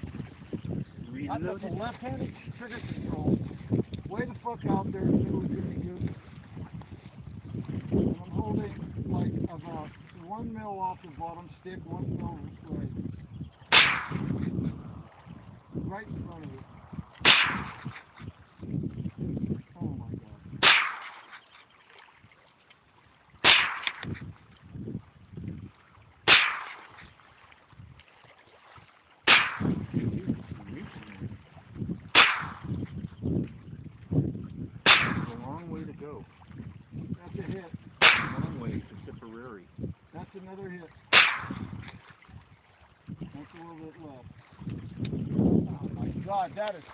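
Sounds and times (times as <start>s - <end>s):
rifle shots: 13.7s - 14.4s, 17.2s - 18.0s, 20.6s - 21.3s, 23.4s - 24.1s, 26.3s - 26.9s, 29.3s - 29.8s, 32.1s - 32.7s, 34.8s - 35.4s, 38.0s - 38.6s, 41.1s - 41.7s.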